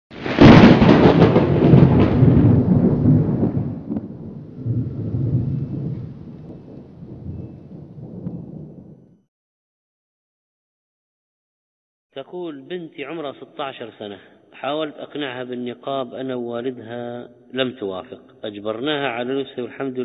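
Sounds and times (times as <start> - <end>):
thunder crack and rumble: 0.1 - 9.2.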